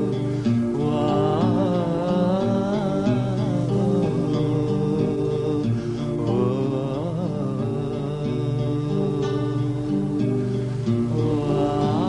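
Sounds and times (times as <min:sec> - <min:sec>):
man singing long held notes: 0:00.0 - 0:12.0.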